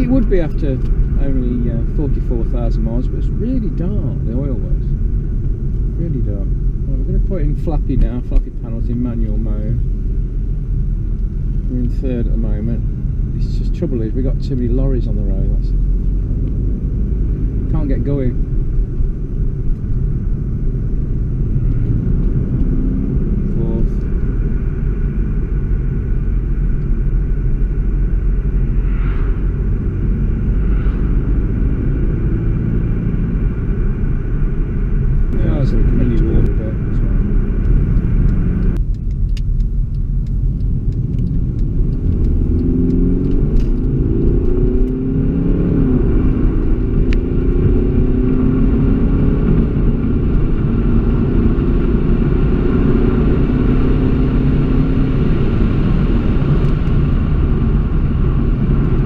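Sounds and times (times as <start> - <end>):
car engine accelerating: 0.0 - 59.0
road rumble: 0.0 - 59.0.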